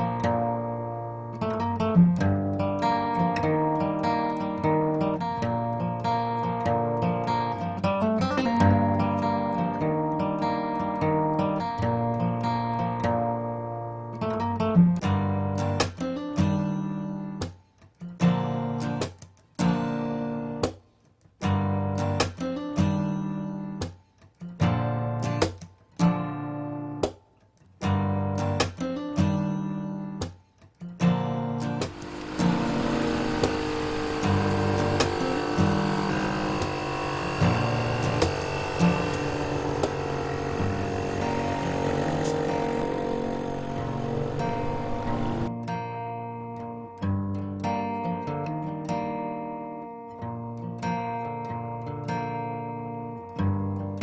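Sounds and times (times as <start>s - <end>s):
acoustic guitar strumming: 0.0s - 20.8s, 21.4s - 27.2s, 27.8s - 54.0s.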